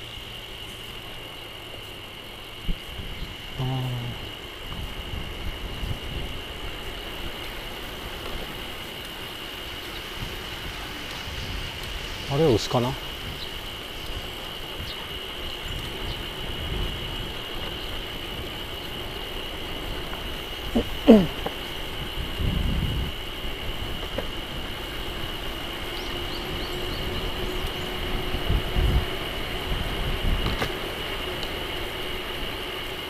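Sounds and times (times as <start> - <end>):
high-pitched riding drone: 0.0 - 33.0
wind and road rumble: 0.0 - 33.0.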